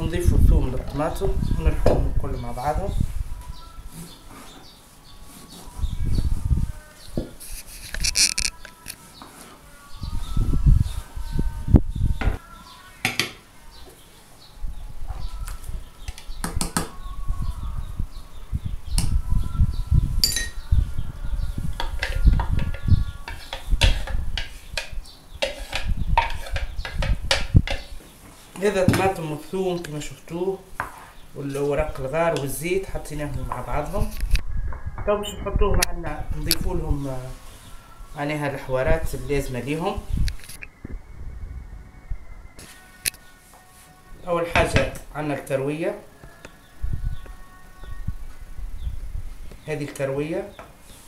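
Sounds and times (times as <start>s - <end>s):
spoon scraping plastic jug: 7.4s - 9.5s, 21.7s - 27.9s
spoon on metal frying pan: 21.8s - 27.9s.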